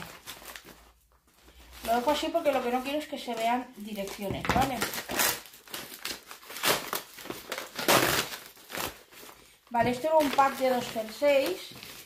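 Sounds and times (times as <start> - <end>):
packaging crinkling and tearing: 0.0 - 12.0.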